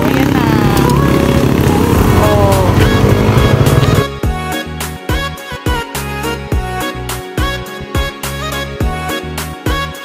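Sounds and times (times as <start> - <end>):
dirt bike engine at low speed: 0.0 - 4.2.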